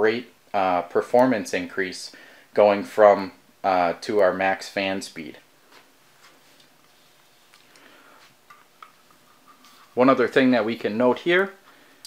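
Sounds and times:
soft rustle: 5.6s - 8.4s, 9.0s - 10.1s.

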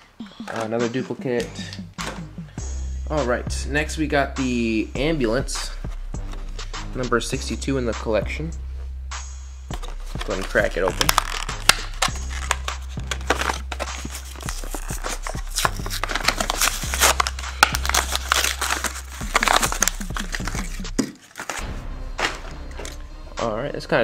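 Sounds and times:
background music: 0.0s - 24.0s
plastic packaging crackling and tearing: 9.8s - 21.6s.

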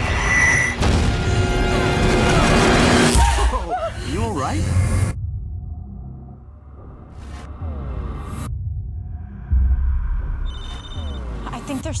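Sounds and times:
deep rumble: 4.7s - 11.5s.

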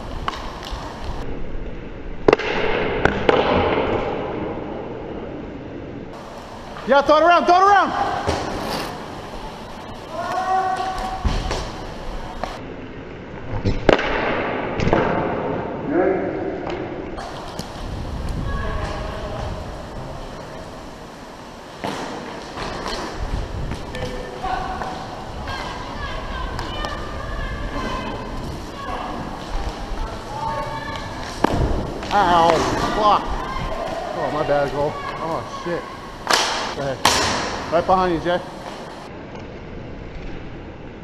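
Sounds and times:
skate wheels rumbling: 0.0s - 15.8s, 16.4s - 41.0s
sticks and puck cracking: 0.2s - 1.2s, 28.9s - 33.1s, 36.2s - 37.7s
players shouting: 6.9s - 12.6s, 24.0s - 39.0s.

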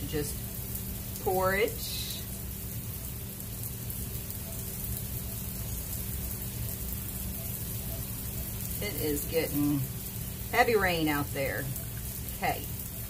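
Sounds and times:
heavy rain heard from indoors: 0.0s - 13.0s.

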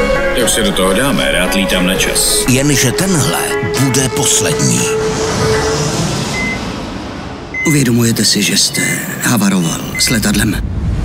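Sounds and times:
held low tone: 0.0s - 7.8s
jet engine rushing: 2.0s - 8.8s.

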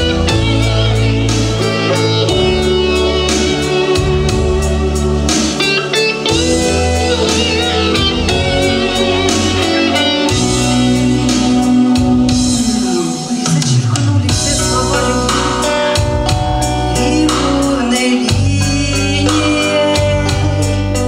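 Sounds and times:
guitar: 0.0s - 21.0s
pop song backing track: 0.0s - 21.0s.

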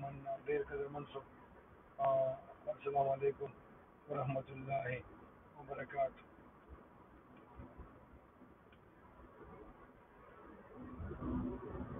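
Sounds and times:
man speaking: 0.0s - 1.2s, 2.0s - 3.5s, 4.1s - 5.0s, 5.6s - 6.2s.

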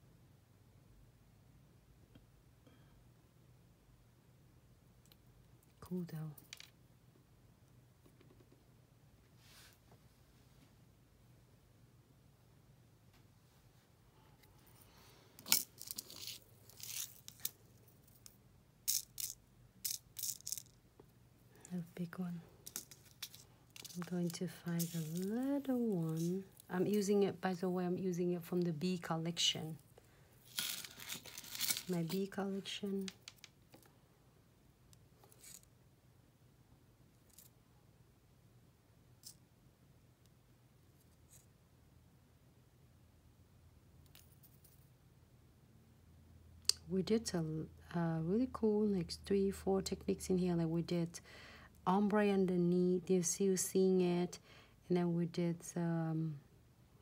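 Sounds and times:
small clicks and light scratches: 15.4s - 21.8s, 22.6s - 27.2s, 30.5s - 33.9s, 34.9s - 35.7s
glitter flakes rattling in plastic tray: 22.7s - 26.3s, 30.5s - 32.2s.

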